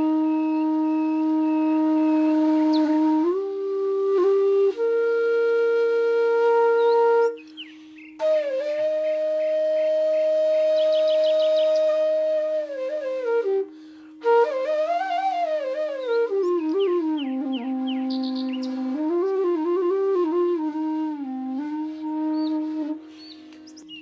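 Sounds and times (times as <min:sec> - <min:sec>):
flute melody: 0:00.0 - 0:24.0.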